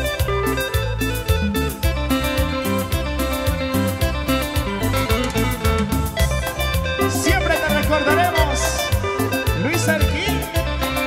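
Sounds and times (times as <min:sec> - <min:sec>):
live latin dance band: 0:00.0 - 0:11.0.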